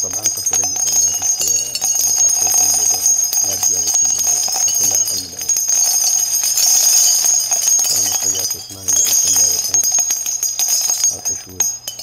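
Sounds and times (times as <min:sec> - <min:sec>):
man talking: 0:00.0 - 0:10.1, 0:10.7 - 0:11.9.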